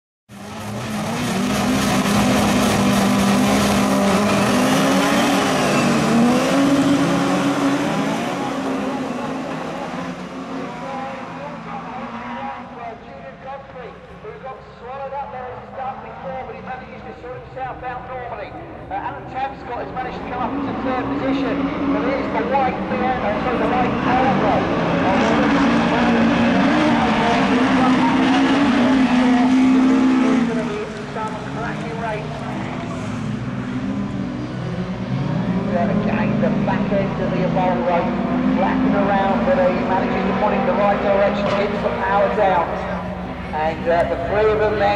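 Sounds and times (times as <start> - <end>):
racing car engines: 0.3 - 44.9.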